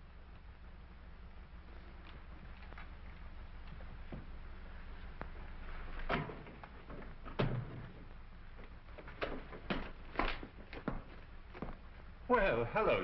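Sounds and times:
low film soundtrack hum: 0:00.0 - 0:13.0
light knocks and footsteps: 0:01.7 - 0:12.2.

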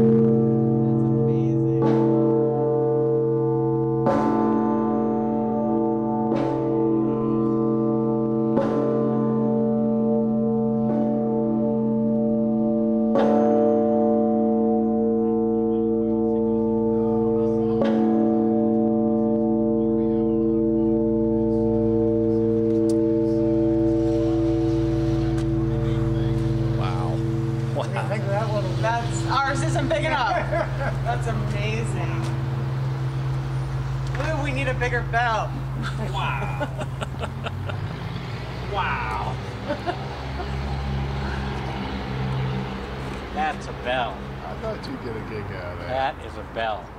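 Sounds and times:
deep bell hum: 0:00.0 - 0:45.3
large bell ringing: 0:00.0 - 0:45.4.

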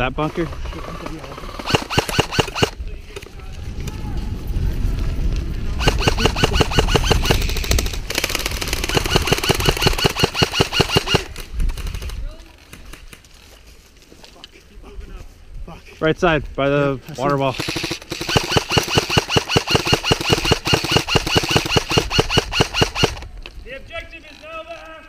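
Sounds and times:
field noise: 0:00.0 - 0:16.1, 0:16.7 - 0:25.0
airsoft rifles firing full-auto: 0:00.2 - 0:02.8, 0:05.8 - 0:12.2, 0:17.5 - 0:23.3
low rumble: 0:02.8 - 0:05.8.

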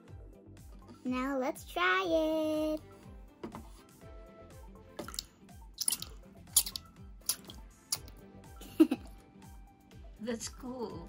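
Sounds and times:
soft background music: 0:00.0 - 0:11.0
small water splashes and drips: 0:05.0 - 0:08.1.

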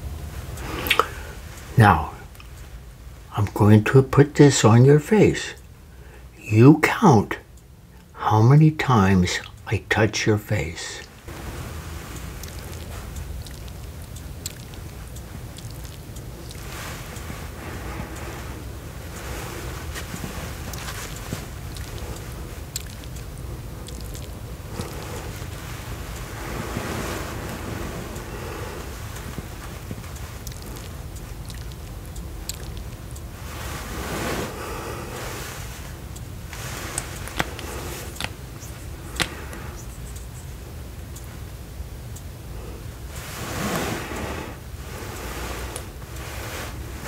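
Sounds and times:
light ticks: 0:00.1 - 0:47.0
sponge swishing on microphone: 0:43.2 - 0:44.6.

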